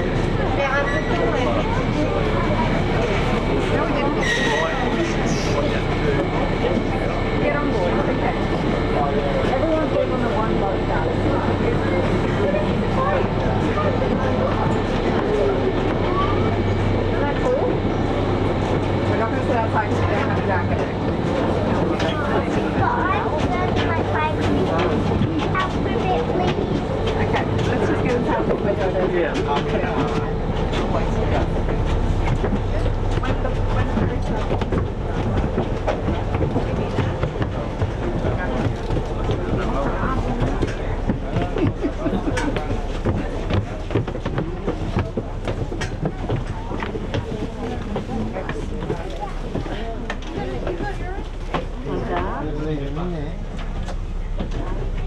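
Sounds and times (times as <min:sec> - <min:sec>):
low hum of ferry engines: 0:00.0 - 0:55.0
people chatting: 0:00.0 - 0:55.0
footsteps on deck and stairs: 0:18.4 - 0:52.4.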